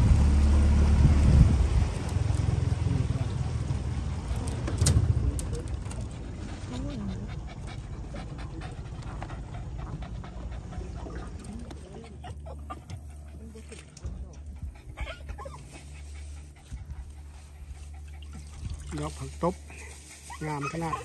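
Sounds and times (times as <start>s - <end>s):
dog panting quickly: 6.0s - 21.0s.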